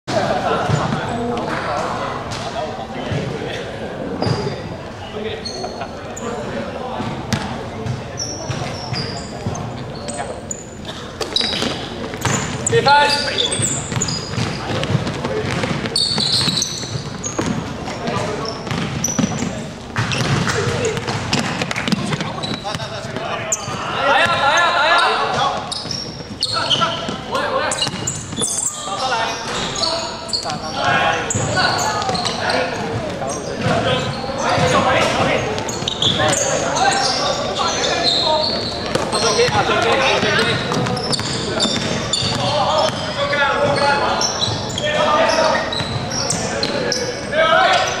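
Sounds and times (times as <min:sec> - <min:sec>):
sneaker squeaks: 0:00.4 - 0:48.0
basketball bouncing on hardwood floor: 0:13.9 - 0:17.6, 0:18.7 - 0:19.4, 0:20.0 - 0:22.7.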